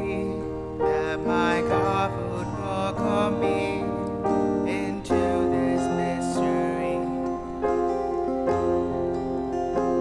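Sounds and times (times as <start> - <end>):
slow church music: 0.0 - 10.0.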